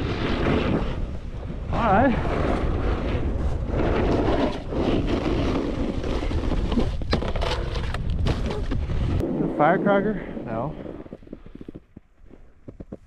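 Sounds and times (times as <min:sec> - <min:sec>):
snowboard scraping over snow: 0:00.0 - 0:13.0.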